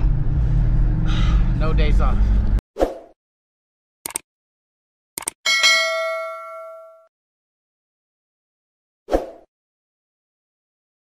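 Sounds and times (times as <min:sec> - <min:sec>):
bright bell ding: 0:05.5 - 0:07.1.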